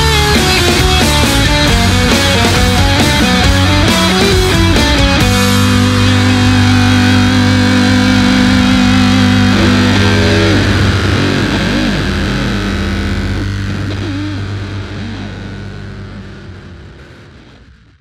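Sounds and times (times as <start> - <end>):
bass guitar: 0.0 - 18.0
distorted electric guitar chord: 0.0 - 18.0.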